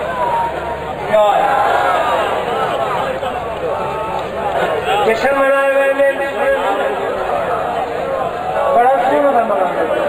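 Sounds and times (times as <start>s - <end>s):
crowd of men talking: 0.0s - 10.0s.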